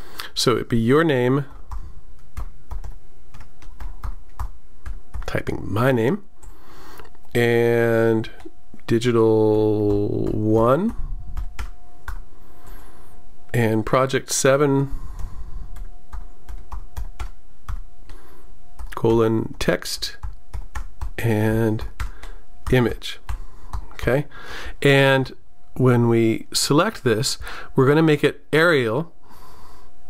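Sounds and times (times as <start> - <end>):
keyboard typing: 1.4 - 5.6, 8.0 - 12.3, 15.0 - 19.2, 20.0 - 24.1.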